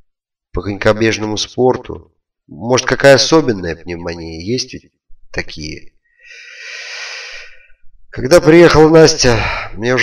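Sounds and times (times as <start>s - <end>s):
person breathing: 6.0s - 8.0s.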